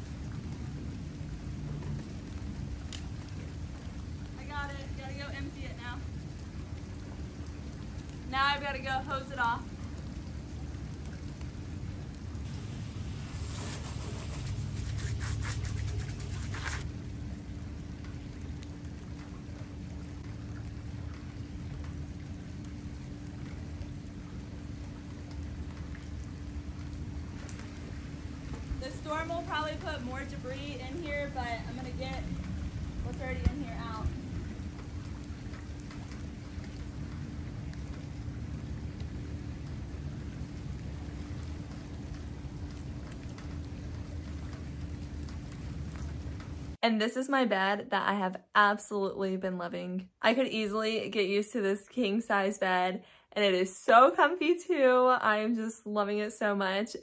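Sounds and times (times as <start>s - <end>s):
water dripping: 0.0s - 46.8s
rain falling: 0.0s - 47.4s
soft wash of water: 0.0s - 48.1s
low hum: 0.0s - 53.6s
water spraying from garden hose: 12.4s - 16.9s.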